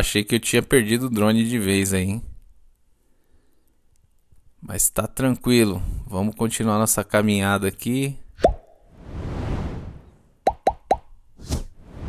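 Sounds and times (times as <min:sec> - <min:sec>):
soft whoosh: 0:08.9 - 0:10.2
cartoon pops rising in pitch: 0:10.5 - 0:11.1.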